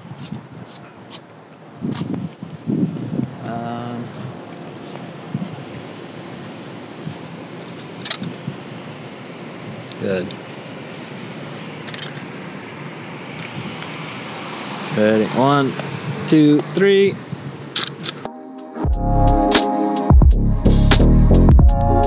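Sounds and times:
traffic noise: 0:00.0 - 0:18.4
wind: 0:00.0 - 0:20.0.

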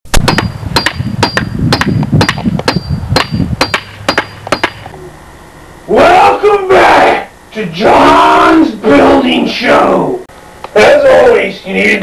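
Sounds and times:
hammer striking metal: 0:00.2 - 0:04.9.

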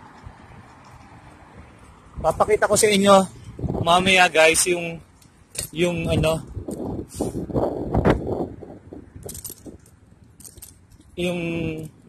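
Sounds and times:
bicycle rattling: 0:07.5 - 0:12.0.

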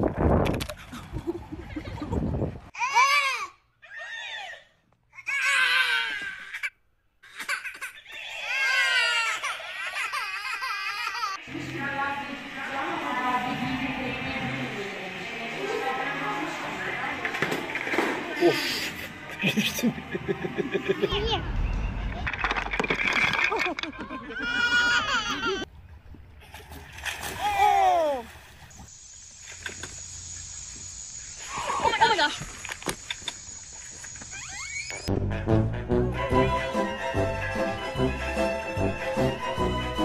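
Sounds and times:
toddler crying: 0:02.8 - 0:04.6, 0:05.2 - 0:06.7, 0:07.3 - 0:11.4, 0:24.2 - 0:25.7
water splashing: 0:25.8 - 0:28.9.

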